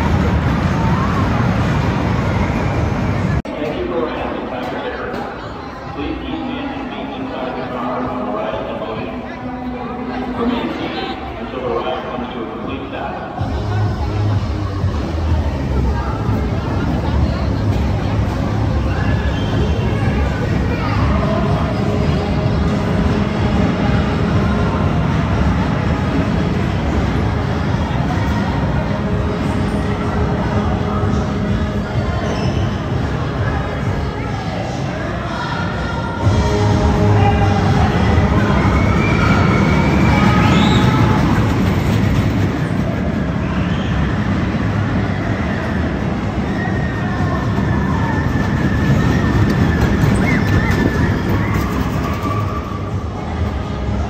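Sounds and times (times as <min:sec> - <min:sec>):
roller coaster wheels rumbling: 0:00.0 - 0:05.4, 0:36.2 - 0:54.0
roller coaster rumbling on track: 0:00.0 - 0:54.0.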